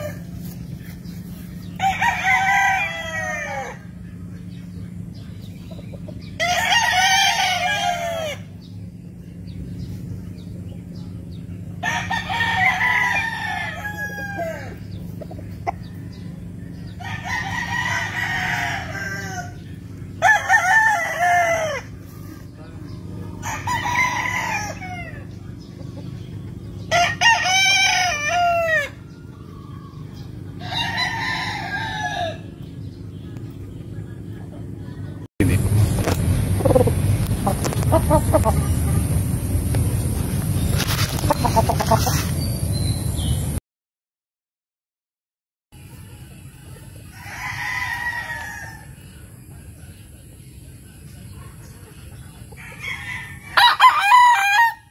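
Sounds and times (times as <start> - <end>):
roosters crowing: 0.0 - 43.4, 45.8 - 54.9
steady low hum: 0.0 - 43.6.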